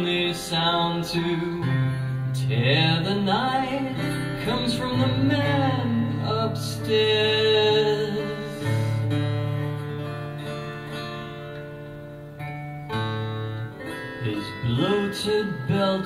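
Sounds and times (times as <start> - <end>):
man singing: 0.0 - 9.1, 14.2 - 16.0
acoustic guitar chords: 0.0 - 16.0.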